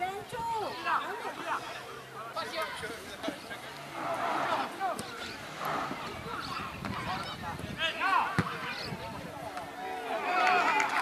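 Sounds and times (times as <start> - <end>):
players and spectators calling out: 0.0 - 11.0
several voices shouting: 3.7 - 11.0.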